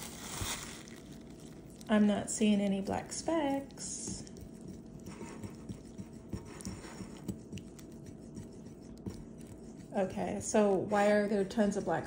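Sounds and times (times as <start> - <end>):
faint steady hum: 0.0 - 12.0
fingers squishing dough: 0.0 - 12.0.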